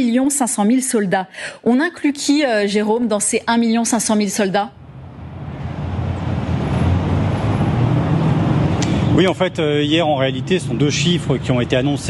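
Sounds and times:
city street traffic: 1.3s - 12.0s.

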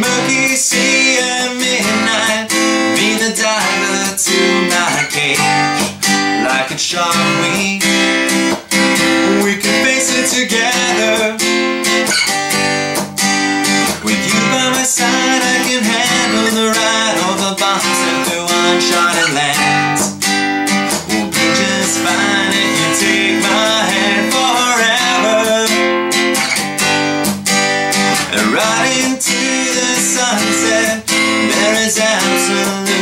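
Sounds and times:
man singing: 0.0s - 11.6s, 13.8s - 20.1s, 21.0s - 26.0s, 28.1s - 33.0s
acoustic guitar strumming: 0.0s - 33.0s.

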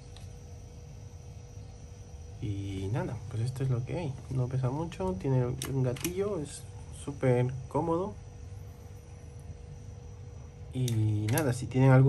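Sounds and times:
faint high whine: 0.0s - 12.0s
low hum: 0.0s - 12.0s.

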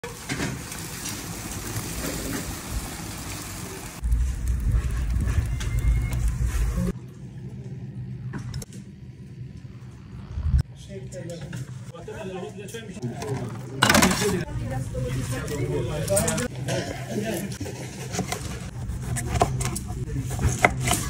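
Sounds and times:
wood fire crackling and hissing: 0.0s - 7.0s
deep low rumble: 4.0s - 10.7s.

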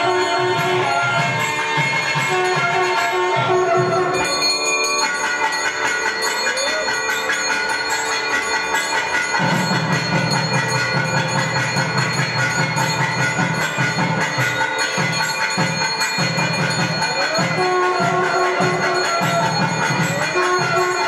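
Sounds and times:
bells ringing: 0.0s - 21.0s
temple music: 0.0s - 21.0s.

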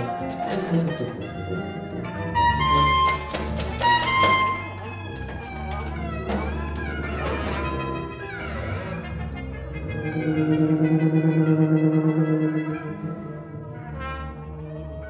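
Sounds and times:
tuba cello and percussion improvising: 0.0s - 15.0s.

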